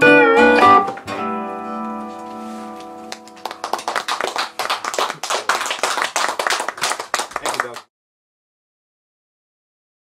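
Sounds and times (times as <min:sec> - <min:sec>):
audience applauding: 0:03.1 - 0:07.9.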